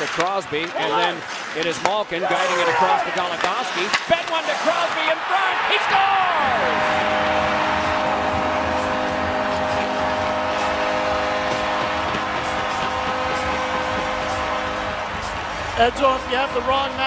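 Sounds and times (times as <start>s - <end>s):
arena crowd cheering: 0.0s - 17.0s
goal horn chord: 6.3s - 17.0s.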